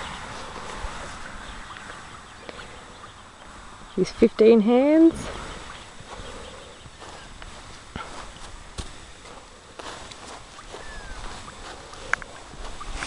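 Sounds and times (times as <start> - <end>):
shuffling steps on grass: 0.0 - 2.8, 4.8 - 13.0.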